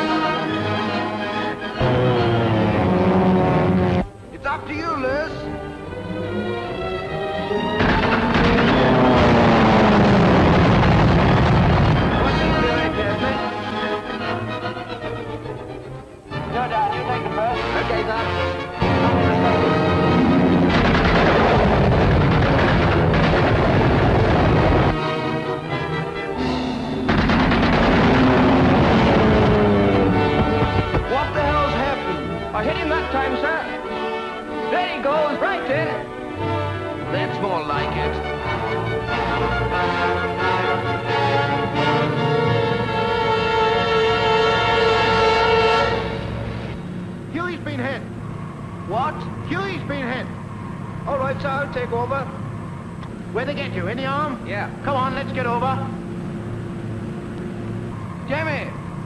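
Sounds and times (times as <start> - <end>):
orchestral film music: 0.0 - 59.0
gunfire: 7.8 - 13.4, 18.8 - 25.3, 25.9 - 32.2.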